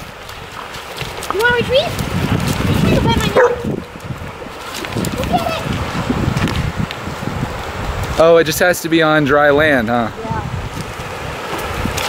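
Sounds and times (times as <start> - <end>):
dog yelping: 3.3 - 3.7.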